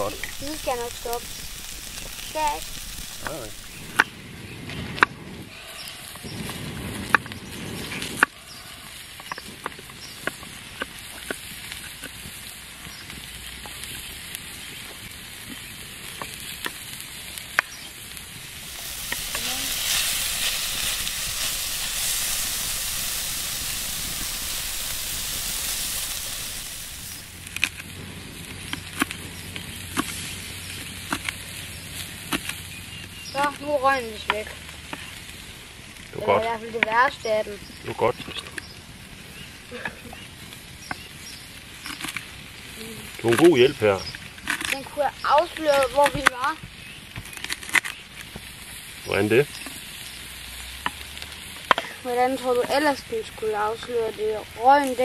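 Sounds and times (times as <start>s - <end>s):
food sizzling in a pan: 0.0s - 4.1s, 5.5s - 55.0s.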